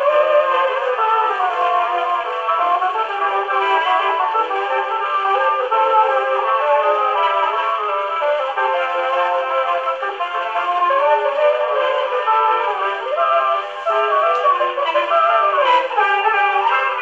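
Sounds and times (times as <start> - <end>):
jazz dance orchestra on phonograph: 0.0 - 17.0.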